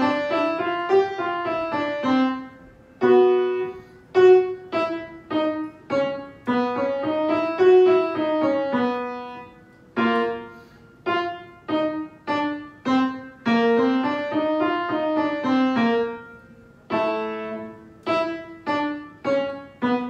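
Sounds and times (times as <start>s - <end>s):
piano playing singing exercise: 0.0s - 20.0s.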